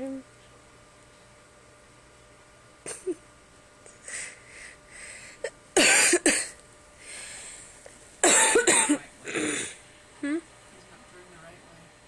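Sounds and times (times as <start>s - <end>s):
person coughing: 5.8s - 6.6s, 8.2s - 9.8s.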